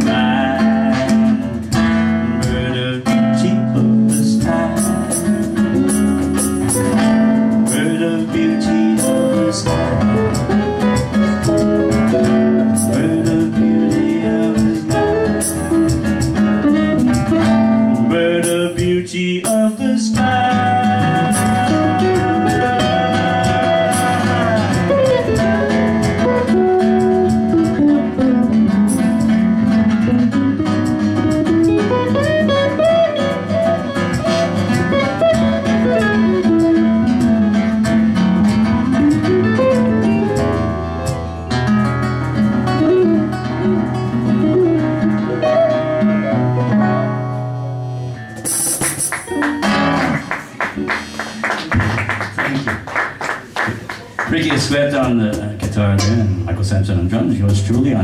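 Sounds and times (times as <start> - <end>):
electric guitar lead line: 0.0 - 19.0, 19.6 - 51.8
strummed acoustic guitar chords: 0.0 - 52.3
cajon beat: 0.0 - 58.0.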